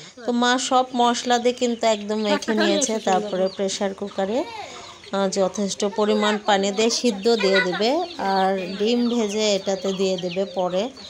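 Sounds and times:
person speaking: 2.0s - 11.0s.

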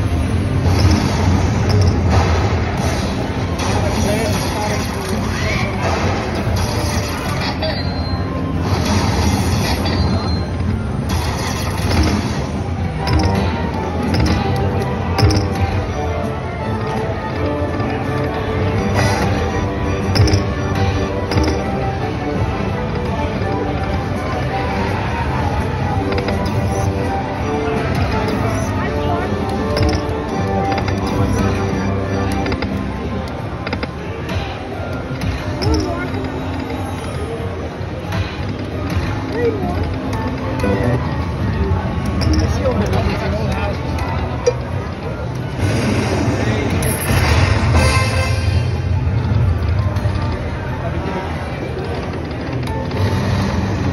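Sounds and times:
slot machine reels spinning: 0.0s - 2.3s, 6.3s - 34.1s, 39.6s - 44.9s
busy casino din: 0.0s - 53.9s
clicks: 29.4s - 36.8s.

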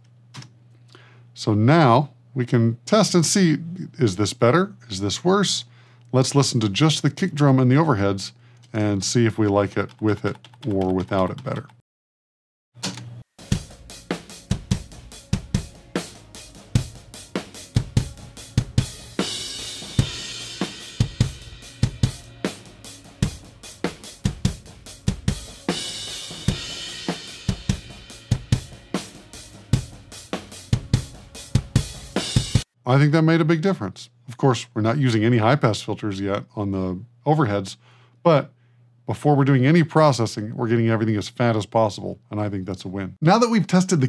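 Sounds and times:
snare drum: 12.8s - 32.7s
cymbals: 13.4s - 32.6s
hi-hat: 13.4s - 32.6s.

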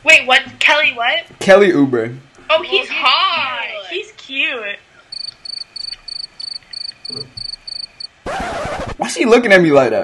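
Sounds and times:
cricket chirping: 5.1s - 8.2s.

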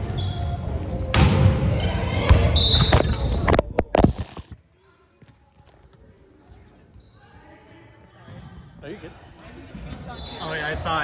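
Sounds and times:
volleyball impact ringing in gym: 1.0s - 3.5s.

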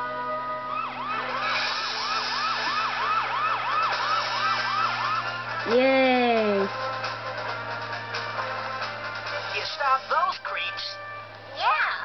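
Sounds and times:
cartoon police siren wailing: 0.0s - 6.8s.

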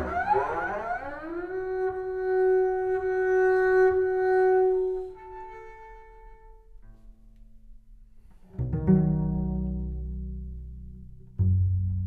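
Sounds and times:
bowed double bass glissando: 0.0s - 6.5s, 8.6s - 12.0s.

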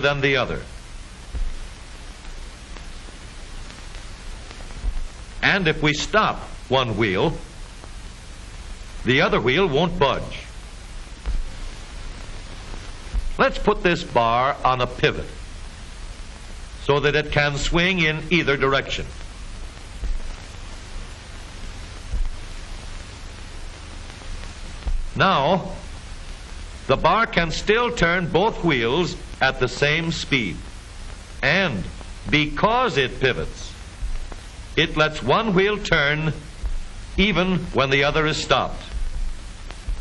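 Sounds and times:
film soundtrack hiss: 0.0s - 40.0s
low thumps: 0.8s - 5.4s, 10.6s - 14.2s, 19.1s - 25.2s, 33.8s - 37.8s, 38.8s - 40.0s.

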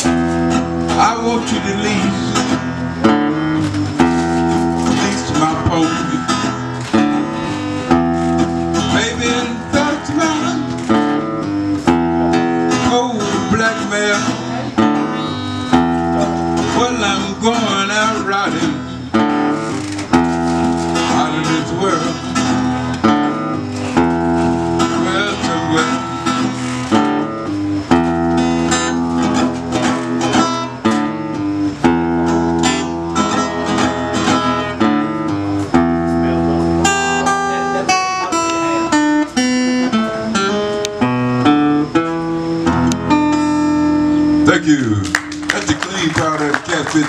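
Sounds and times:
acoustic guitar playing blues: 0.0s - 47.0s.

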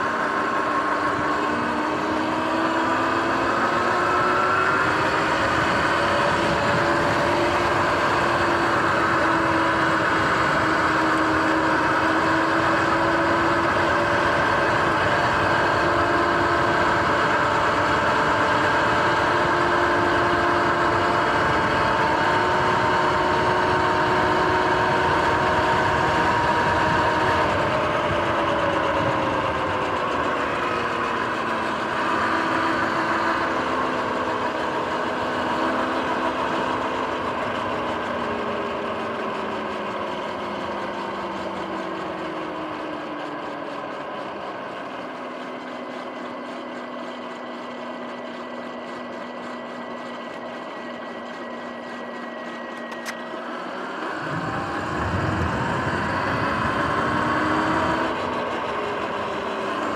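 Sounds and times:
electric motor whining: 0.0s - 59.9s
wind and tyre noise: 0.0s - 59.9s.

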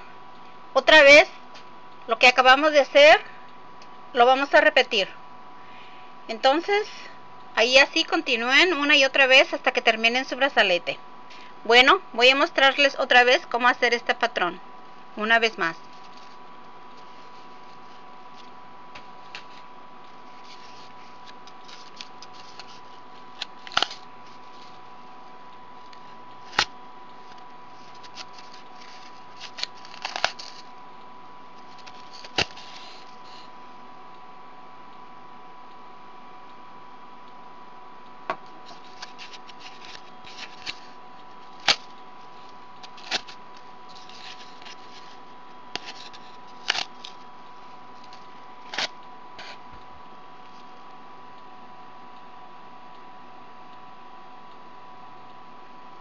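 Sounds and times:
faint electrical whine: 0.0s - 56.0s.

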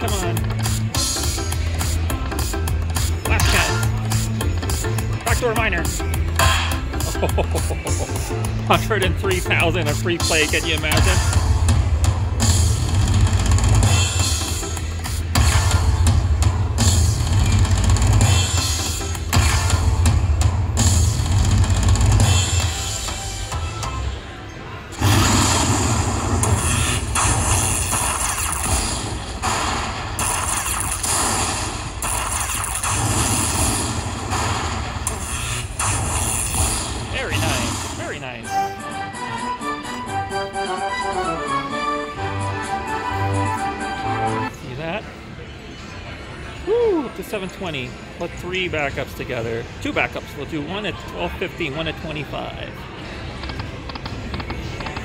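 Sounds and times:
slot machine bonus music: 2.5s - 14.8s, 15.4s - 24.0s, 25.0s - 44.5s
slot machine win tune: 3.3s - 11.6s.

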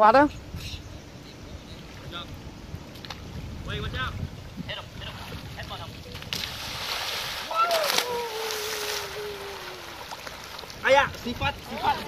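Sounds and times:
wind rumbling on microphone: 0.0s - 12.0s
pool water splashing: 1.8s - 12.0s.

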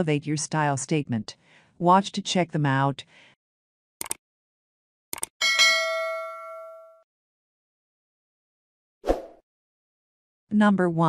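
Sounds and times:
short clicks: 4.0s - 4.2s, 5.1s - 5.3s
notification bell ding: 5.4s - 7.0s.

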